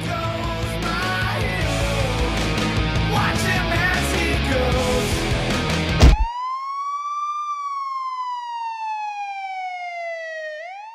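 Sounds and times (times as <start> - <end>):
rock music: 0.0 - 6.3
brief loud hit: 6.0 - 6.3
siren wail: 6.0 - 10.9.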